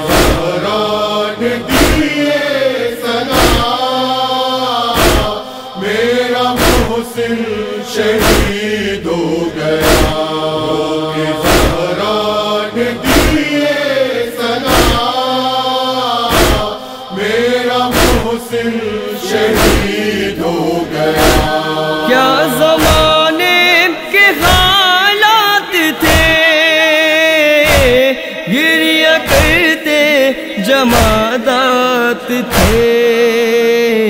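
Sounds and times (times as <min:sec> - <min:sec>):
men chanting mournful refrain: 0:00.0 - 0:34.0
hands striking chest: 0:05.0 - 0:05.4, 0:06.6 - 0:07.0, 0:08.2 - 0:08.6, 0:09.8 - 0:10.2, 0:11.4 - 0:11.9, 0:14.7 - 0:15.1, 0:16.3 - 0:16.7, 0:17.9 - 0:18.3, 0:19.6 - 0:20.0, 0:21.2 - 0:21.6.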